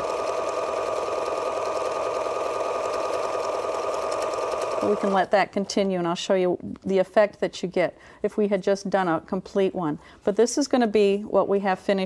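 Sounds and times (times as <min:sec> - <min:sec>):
electric sewing machine running: 0:00.0 - 0:05.3.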